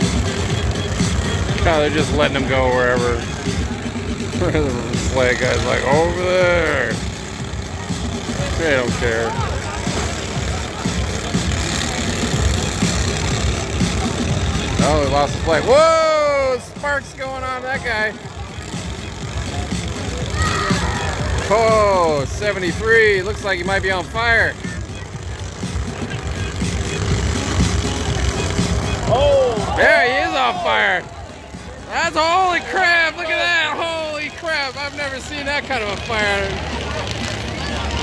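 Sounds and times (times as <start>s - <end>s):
crowd voices: 0.0s - 38.0s
lawn tractor engines running: 0.0s - 38.0s.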